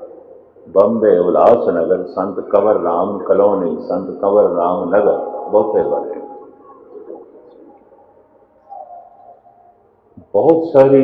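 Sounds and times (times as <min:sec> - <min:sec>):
man's voice echoing: 0:00.0 - 0:08.0, 0:10.2 - 0:11.0
soft hum: 0:00.0 - 0:10.4.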